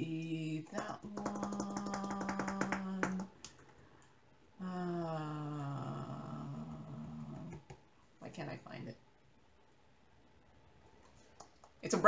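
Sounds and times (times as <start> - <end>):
woman humming: 0.0 - 3.3, 4.6 - 7.7.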